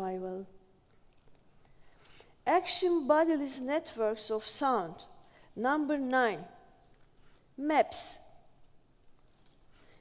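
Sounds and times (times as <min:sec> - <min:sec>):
woman speaking: 0:00.0 - 0:00.5, 0:02.5 - 0:06.7, 0:07.6 - 0:08.4.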